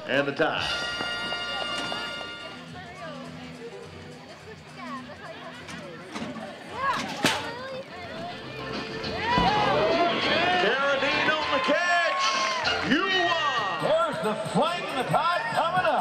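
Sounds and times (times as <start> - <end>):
music: 0.0 - 16.0
voices: 1.4 - 16.0.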